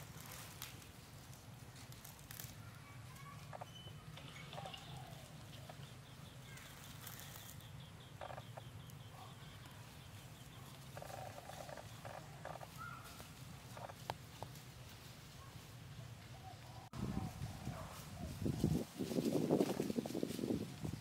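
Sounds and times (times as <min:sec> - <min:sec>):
dry leaves rustling: 0:00.0 - 0:21.0.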